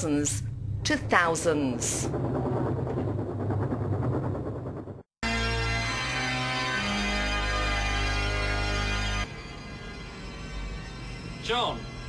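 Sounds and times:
engine rumbling: 0.0s - 5.1s.

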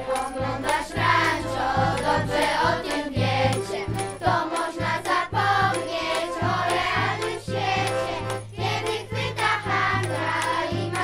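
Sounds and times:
backing track with bass beat: 0.0s - 11.0s
children singing together: 0.0s - 11.0s.

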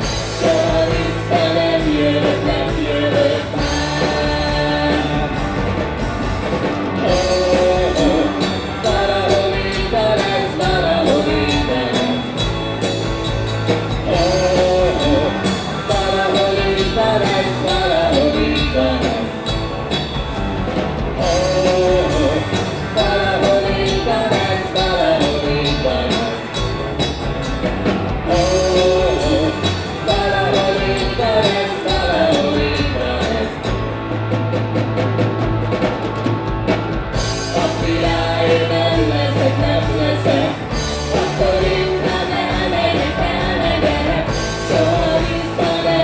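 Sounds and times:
man singing: 0.0s - 5.5s, 7.0s - 12.4s, 14.0s - 19.4s, 21.2s - 26.6s, 28.3s - 33.7s, 37.5s - 46.0s
drum kit: 0.0s - 46.0s
electric guitars: 0.0s - 46.0s.

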